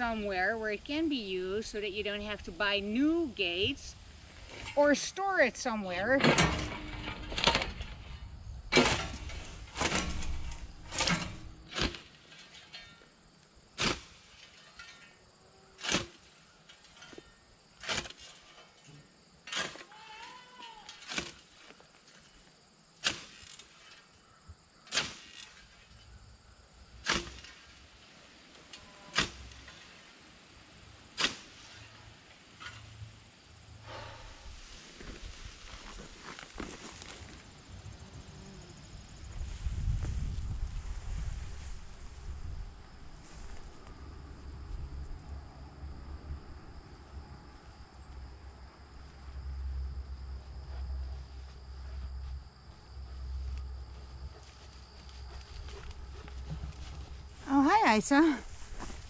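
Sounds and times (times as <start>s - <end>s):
scythe swishing through grass: 31.2s - 31.8s
wind on microphone: 39.2s - 43.8s.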